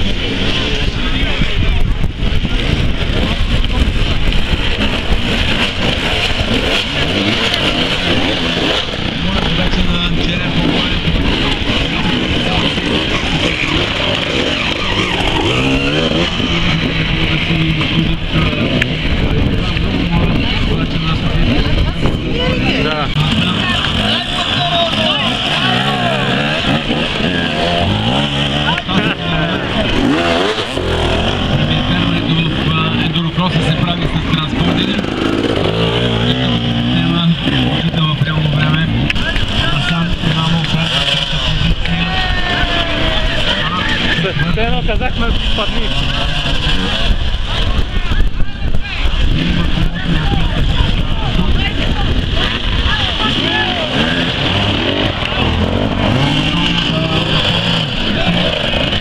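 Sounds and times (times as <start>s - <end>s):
motorcycle engines revving: 0.0s - 59.0s.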